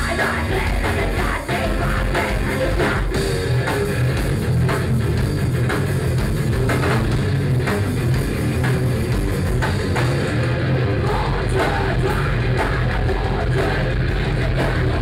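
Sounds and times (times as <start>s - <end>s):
punk band playing live: 0.0s - 15.0s.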